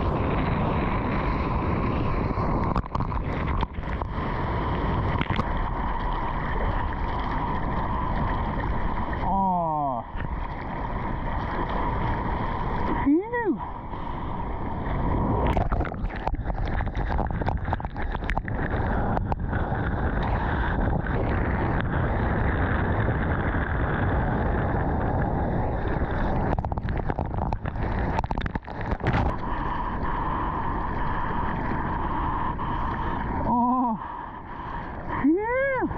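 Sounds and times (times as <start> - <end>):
ocean water rushing and splashing: 0.0 - 35.9
wind on microphone: 0.0 - 35.9.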